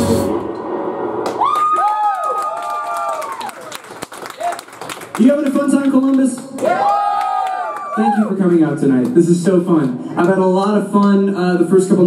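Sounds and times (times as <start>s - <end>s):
audience cheering and shouting: 1.2s - 3.8s, 6.6s - 8.4s
people clapping: 1.2s - 11.3s.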